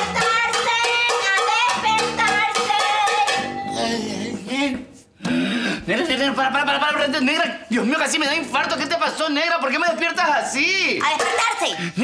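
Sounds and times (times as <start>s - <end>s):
metal pots banged together: 0.0s - 3.6s, 11.0s - 11.8s
lively music with singing: 0.0s - 5.9s.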